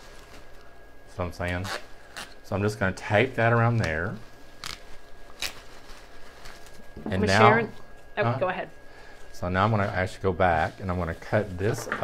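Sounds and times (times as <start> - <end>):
tape ripping: 4.6 - 6.8.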